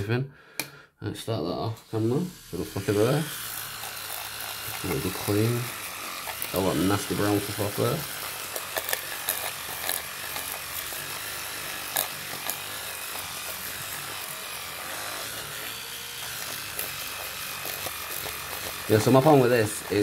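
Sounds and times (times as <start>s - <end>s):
electric toothbrush scrubbing: 1.3s - 20.0s.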